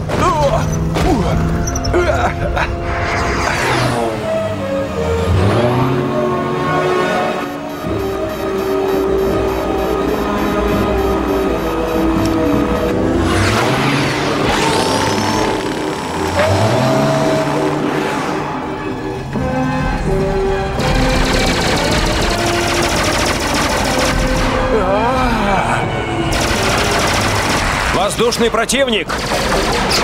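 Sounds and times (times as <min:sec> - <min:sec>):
cartoon action music: 0:00.2 - 0:17.9, 0:20.7 - 0:30.0
rapid machine-gun fire: 0:20.8 - 0:24.7, 0:26.3 - 0:28.3, 0:29.1 - 0:30.0.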